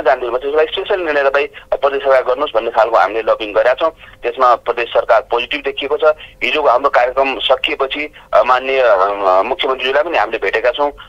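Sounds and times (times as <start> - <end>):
man talking: 0.0 - 11.0.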